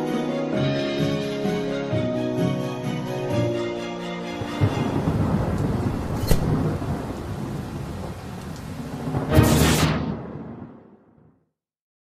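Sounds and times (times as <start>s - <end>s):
music: 0.0s - 5.6s, 9.2s - 10.3s
sharp crack: 5.4s - 6.9s.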